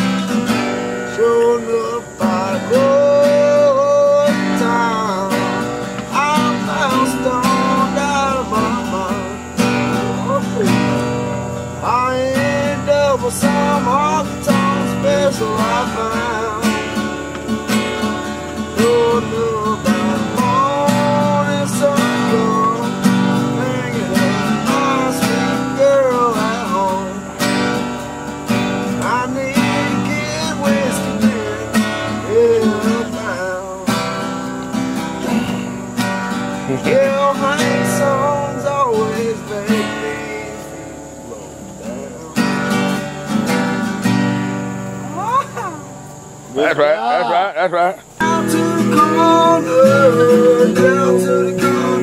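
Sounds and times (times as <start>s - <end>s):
acoustic guitar strumming: 0.0s - 52.0s
harmonica melody: 48.1s - 52.0s.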